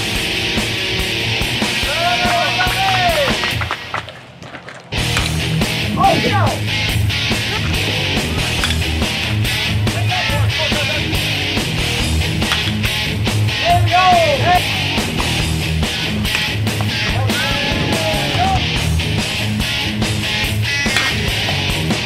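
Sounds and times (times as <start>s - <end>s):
loud rock music: 0.0s - 3.9s, 4.9s - 22.0s.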